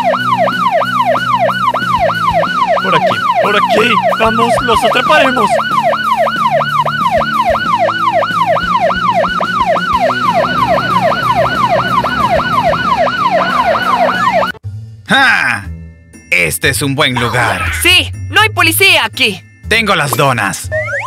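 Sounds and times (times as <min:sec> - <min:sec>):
falling siren glide: 0:00.0 - 0:14.6
police siren yelp: 0:00.0 - 0:14.6.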